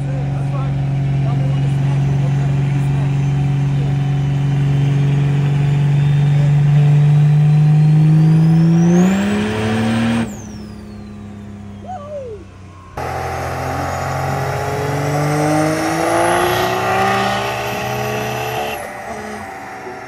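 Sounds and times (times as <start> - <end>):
diesel engine revving: 0.0 - 20.0
turbo whine: 0.0 - 20.0.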